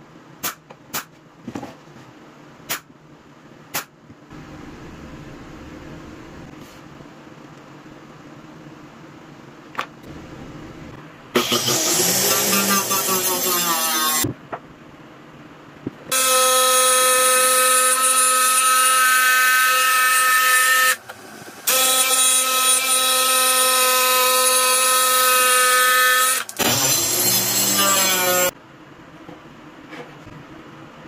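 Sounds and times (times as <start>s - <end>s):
jigsaw cutting plywood: 11.4s - 13.6s.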